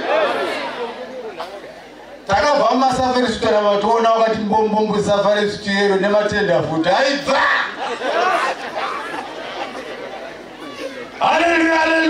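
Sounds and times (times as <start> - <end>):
background chatter of voices: 0.0 - 2.3, 7.5 - 11.7.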